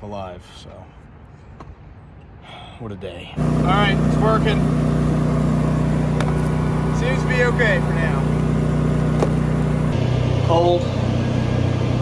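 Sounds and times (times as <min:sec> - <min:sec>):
refrigeration unit humming: 0:03.4 - 0:12.0.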